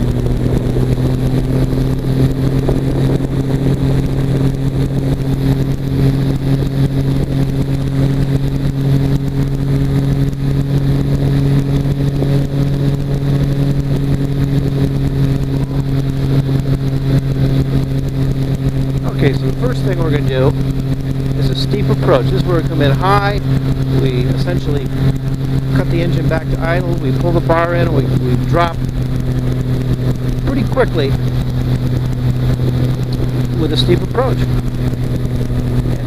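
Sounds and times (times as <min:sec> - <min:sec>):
engine and propeller droning: 0:00.0 - 0:36.0.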